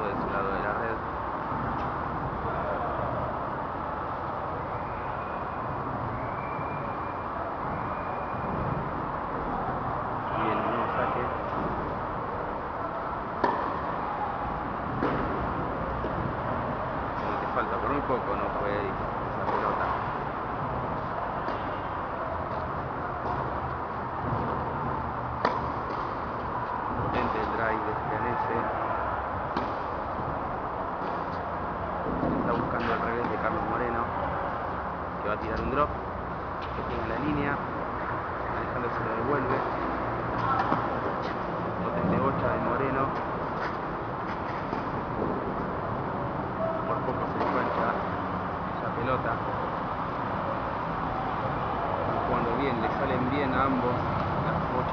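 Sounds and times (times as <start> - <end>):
indoor hall hum: 0.0 - 54.9
tennis ball knocks: 13.4 - 13.9, 19.4 - 20.1, 25.4 - 26.4, 47.3 - 47.8
tennis ball struck with rackets: 13.4 - 13.9, 14.9 - 16.2, 24.2 - 27.6.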